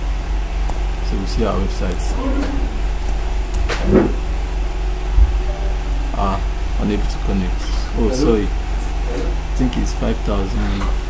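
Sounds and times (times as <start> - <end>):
low background hum: 0.0 - 11.0
low thump: 5.2 - 5.4.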